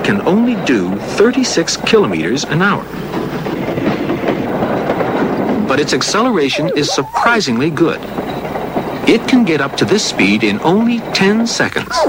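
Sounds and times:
steam locomotive chuffing: 0:00.0 - 0:12.0.

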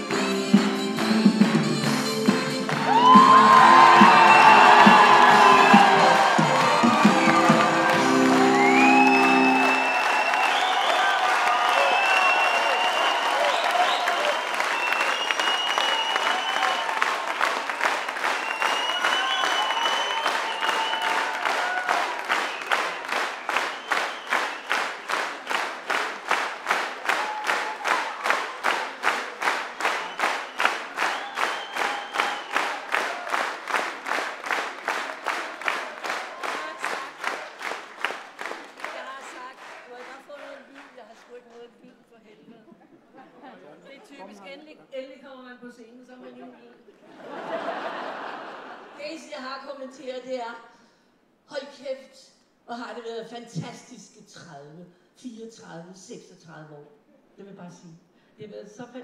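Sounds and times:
band music: 0:00.0 - 0:10.1
audience applauding and cheering: 0:00.0 - 0:41.6
rhythmic clapping in unison: 0:00.0 - 0:41.7.

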